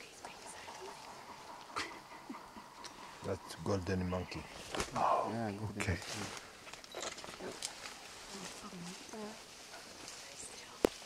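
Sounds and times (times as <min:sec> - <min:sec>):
gorilla low grunts: 0:00.8 - 0:03.7
leaves and stems rustling: 0:04.4 - 0:11.0.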